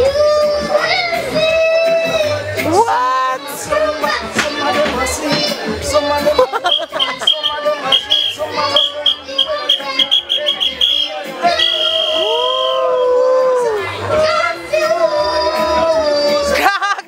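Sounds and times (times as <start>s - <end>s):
boy singing into a microphone: 0.0s - 10.7s, 13.2s - 16.9s
reggae backing music: 0.0s - 17.0s.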